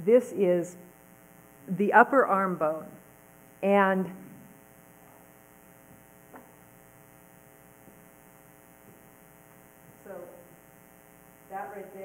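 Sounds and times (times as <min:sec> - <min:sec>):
woman speaking: 0:00.0 - 0:00.8, 0:01.7 - 0:03.0, 0:03.6 - 0:04.2, 0:10.0 - 0:10.5, 0:11.5 - 0:12.0
faint electrical mains hum: 0:00.0 - 0:12.0.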